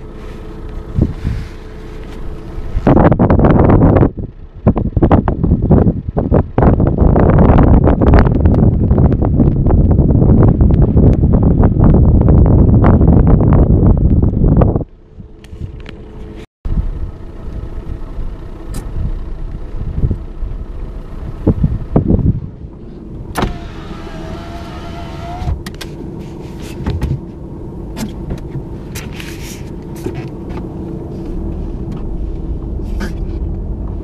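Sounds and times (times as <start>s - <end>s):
car driving on snowy road: 0.0s - 34.0s
wind rushing on microphone: 0.9s - 1.5s, 2.4s - 17.1s, 18.7s - 25.9s.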